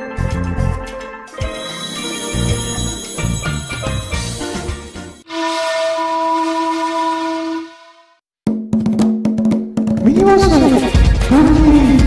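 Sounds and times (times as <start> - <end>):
jingle: 0.0 - 5.4
whistle-like musical tone: 1.4 - 6.7.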